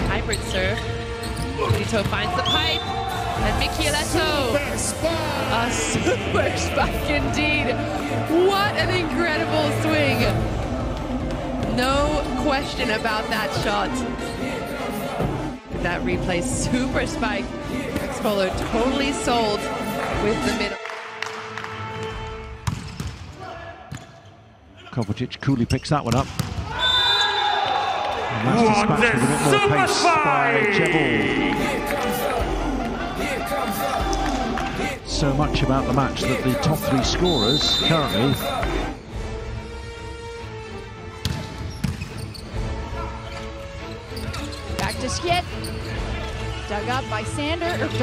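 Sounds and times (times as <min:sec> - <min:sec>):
background music: 0:00.0 - 0:23.5, 0:27.0 - 0:48.0
arena noise: 0:26.6 - 0:39.0
echoing hall ambience: 0:27.8 - 0:41.6.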